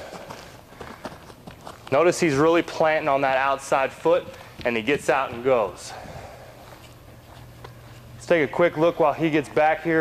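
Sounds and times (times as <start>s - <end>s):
footfalls on artificial turf: 0.0s - 2.5s.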